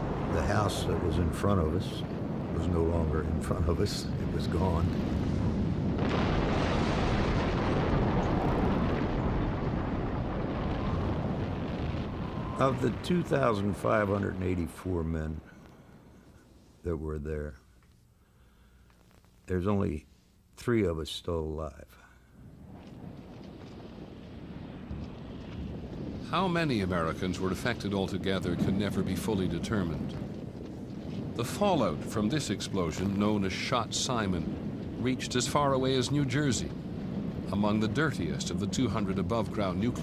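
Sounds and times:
explosion blast wave roaring rumble: 0.0s - 16.2s, 22.4s - 40.0s.

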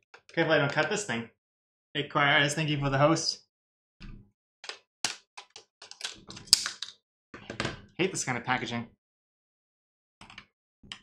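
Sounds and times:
plastic cracking and snapping: 4.6s - 7.0s.

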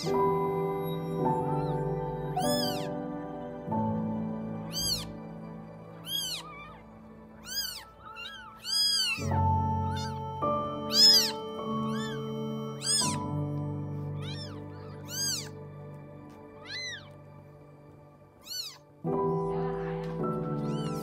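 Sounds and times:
kittens mewing: 0.0s - 0.2s, 0.8s - 3.1s, 4.0s - 15.6s, 16.3s - 17.2s, 18.4s - 19.4s, 20.6s - 21.0s
music with sustained chords: 0.0s - 21.0s.

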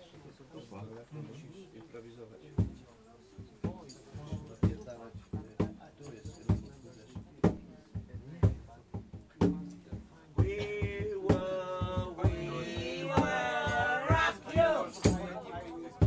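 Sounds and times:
tambourine beat: 3.4s - 16.0s.

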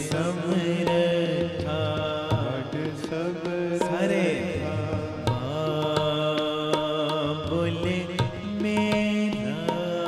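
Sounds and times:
tabla strokes: 0.0s - 10.0s.

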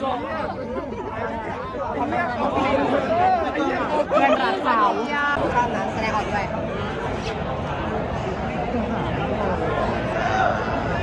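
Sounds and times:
chatter of many students: 0.0s - 11.0s.

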